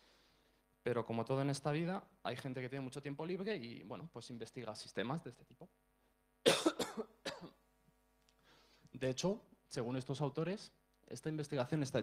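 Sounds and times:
man coughing: 6.4s - 7.6s.

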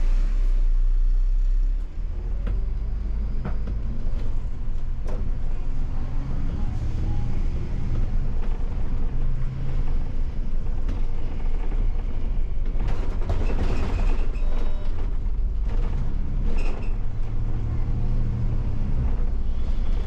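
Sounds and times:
bus engine accelerating: 0.0s - 20.0s
bus body rattling: 1.9s - 20.0s.

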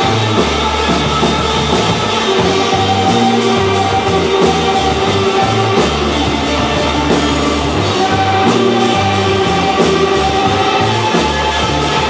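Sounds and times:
distorted electric guitar: 0.0s - 12.0s.

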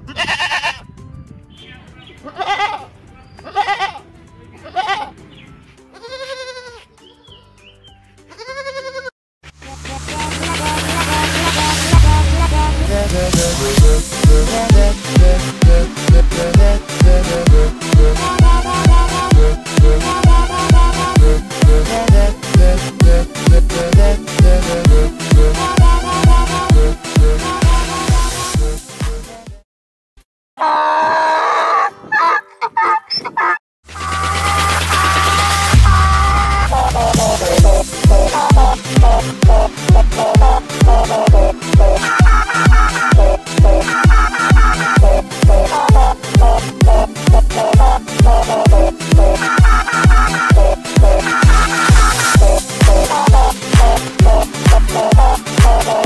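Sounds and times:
goat bleating: 0.0s - 0.8s, 2.2s - 4.0s, 4.6s - 5.2s, 5.9s - 6.9s, 8.3s - 9.1s, 40.3s - 48.5s, 49.2s - 52.3s
music: 0.0s - 29.6s, 33.9s - 56.0s
donkey braying: 2.1s - 4.0s, 30.6s - 56.0s.

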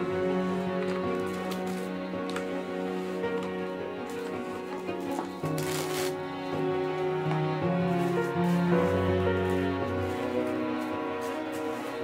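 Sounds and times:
background music: 0.0s - 12.0s
plastic cling wrap crinkling: 4.2s - 6.2s.

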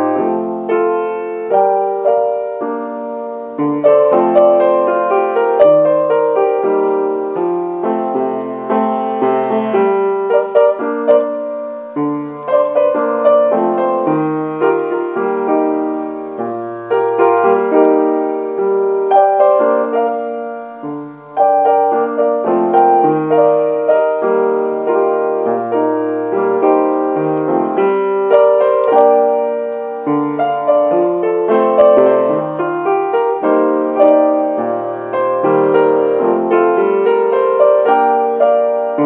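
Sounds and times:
solo piano: 0.0s - 39.0s.

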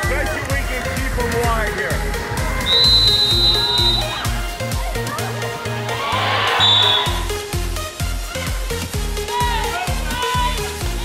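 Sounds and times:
electronic dance music: 0.0s - 11.0s
high whistle: 2.6s - 4.3s, 6.5s - 7.3s.

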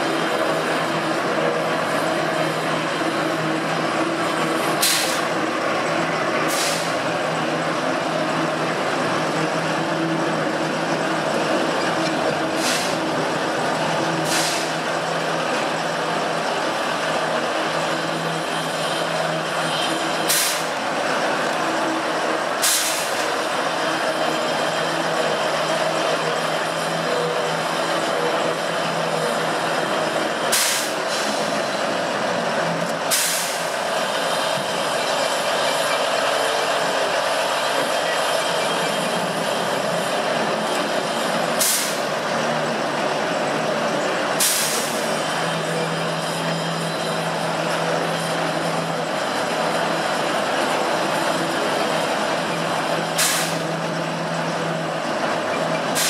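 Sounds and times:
steam locomotive hissing: 0.0s - 10.7s, 11.5s - 56.0s
sharp bursts of steam hiss: 4.8s - 5.3s, 6.5s - 7.0s, 20.3s - 20.8s, 22.6s - 23.2s, 30.5s - 31.6s, 33.1s - 33.8s, 41.6s - 42.1s, 44.4s - 45.1s, 53.2s - 53.7s.

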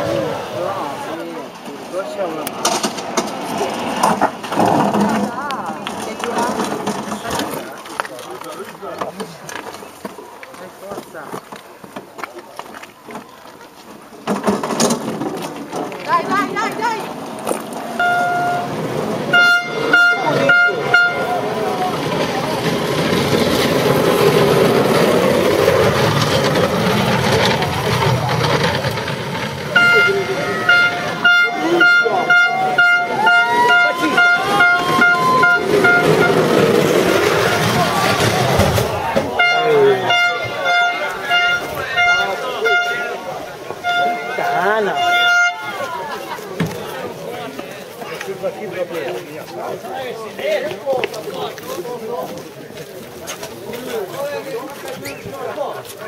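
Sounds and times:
crowd voices: 0.0s - 56.0s
horn tooting rapidly: 18.0s - 22.6s, 29.6s - 46.1s.

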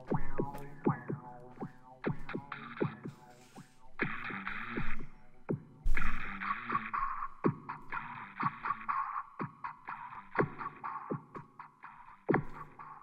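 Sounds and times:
low swooping kick drum: 0.0s - 8.8s.

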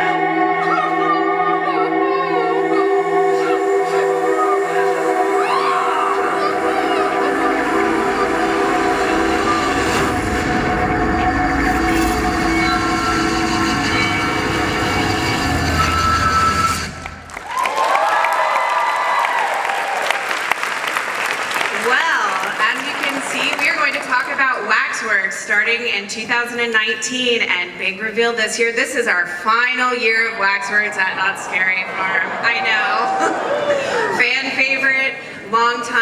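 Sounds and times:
wavering voice-like tones: 0.0s - 17.0s, 30.0s - 34.2s
sustained droning chord: 0.0s - 17.3s
low rumble: 0.0s - 17.5s.

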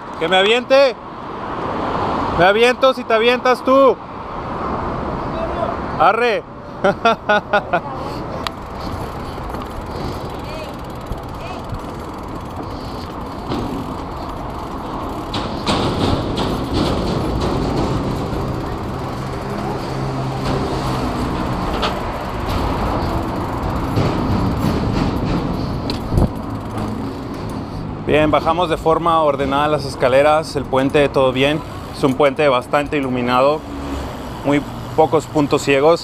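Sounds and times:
road traffic noise: 0.0s - 36.0s
bike knocking and rattling on steps: 8.3s - 36.0s.

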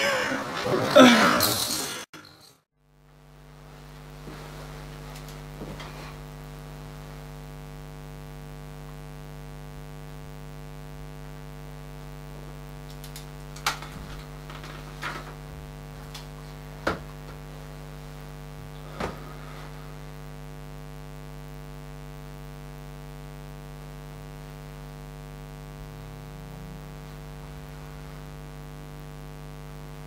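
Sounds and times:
electrical hum: 2.9s - 30.0s.

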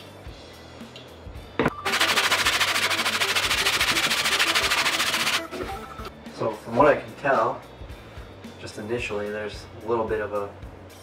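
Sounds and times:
metal plane scraping on sandpaper: 1.9s - 5.4s.

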